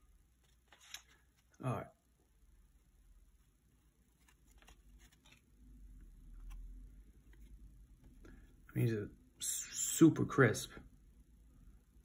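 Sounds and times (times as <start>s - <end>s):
cardboard cards sliding: 0.4s - 1.5s, 4.1s - 7.7s.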